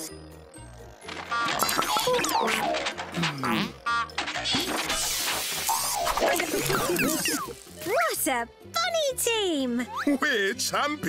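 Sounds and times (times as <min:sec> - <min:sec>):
cartoon background music: 0:00.0 - 0:11.0
clattering crashing sound effects: 0:01.0 - 0:07.3.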